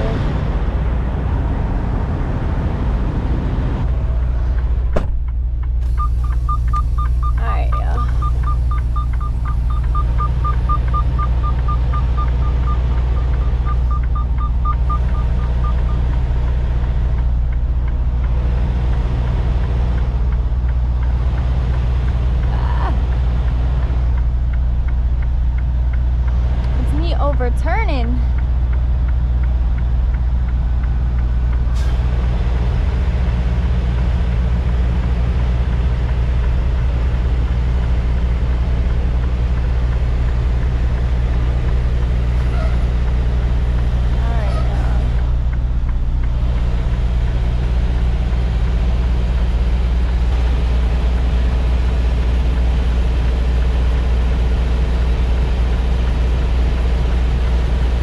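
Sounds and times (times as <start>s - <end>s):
truck diesel engine running: 0.0s - 58.0s
rapid electronic beeping: 6.0s - 16.2s.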